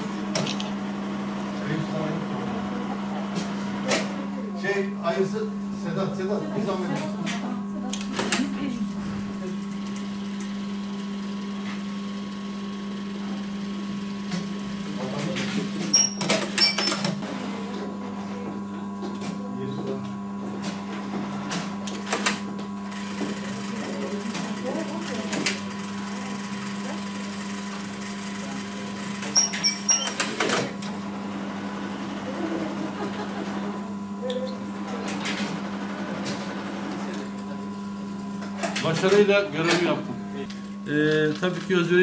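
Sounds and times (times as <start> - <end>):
sewing machine stitching: 26.2 - 30.8.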